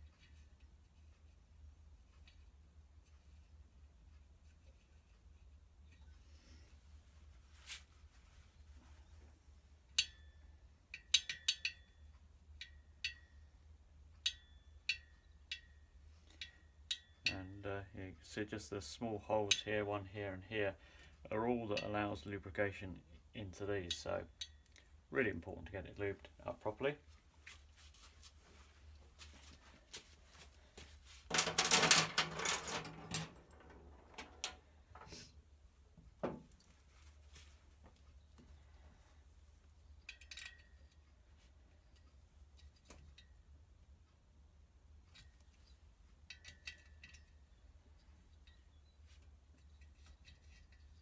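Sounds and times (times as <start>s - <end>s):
rubbing rustling sound: 7.0s - 9.6s, 27.0s - 33.4s, 36.7s - 38.1s
small metal parts clinking: 31.3s - 35.1s, 40.0s - 41.0s, 45.1s - 48.7s.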